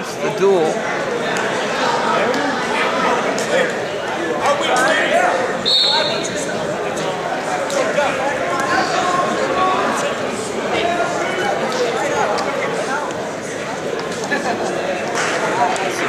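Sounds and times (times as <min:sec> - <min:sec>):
chatter of people talking: 0:00.0 - 0:16.0.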